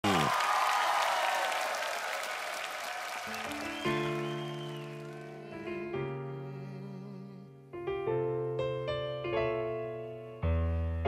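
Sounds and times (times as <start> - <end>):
audience applauding: 0.0 - 5.5
piano chords: 3.1 - 11.0.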